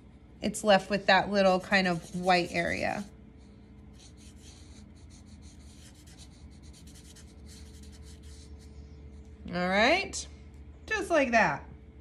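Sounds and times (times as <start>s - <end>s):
steady low hum: 0.0s - 12.0s
marker rubbing on paper: 0.7s - 3.1s, 3.9s - 8.6s.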